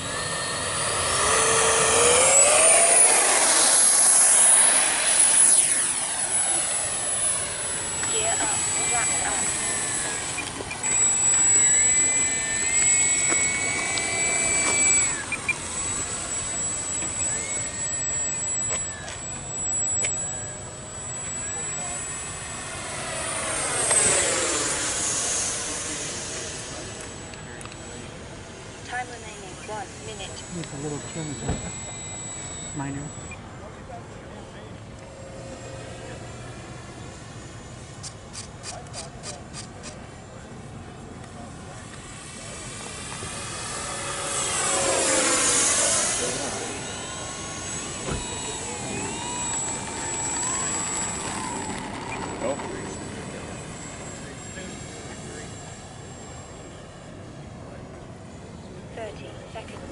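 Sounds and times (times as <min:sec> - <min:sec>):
model jet fan whining: 0:00.0 - 0:59.9.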